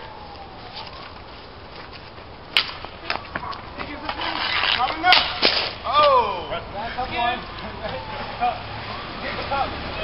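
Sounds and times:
low background noise: 0:00.0 - 0:10.0
hockey stick striking ball: 0:02.5 - 0:05.8.

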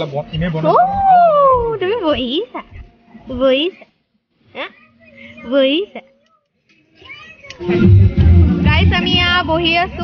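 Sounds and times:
background music: 0:07.0 - 0:10.0.

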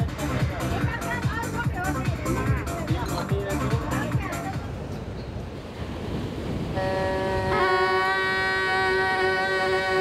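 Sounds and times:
voices: 0:00.0 - 0:05.0.

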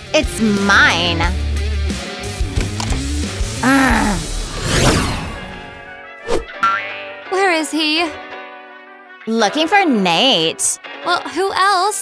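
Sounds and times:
background music: 0:00.0 - 0:12.0
whoosh: 0:04.3 - 0:06.5
springy boing: 0:06.6 - 0:07.0.

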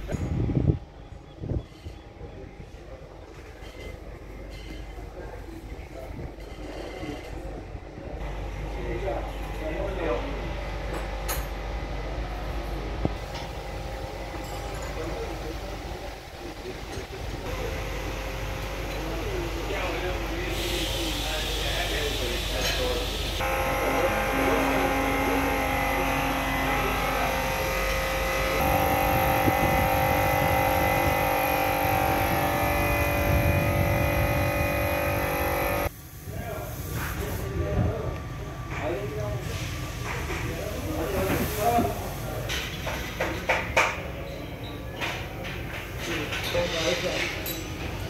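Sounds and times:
mechanical hum with held tones: 0:00.0 - 0:36.7.

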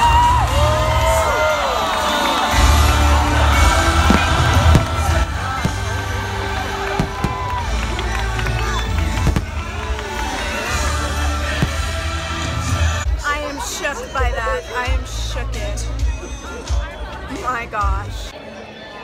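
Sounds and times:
crowd cheering and whooping: 0:00.0 - 0:13.1
loud show music: 0:00.0 - 0:18.4
deep firework booms: 0:03.4 - 0:13.0.

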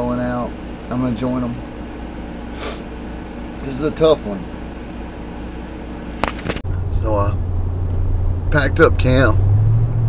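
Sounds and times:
air conditioner hum: 0:00.0 - 0:09.4
car driving drone: 0:06.0 - 0:10.0.

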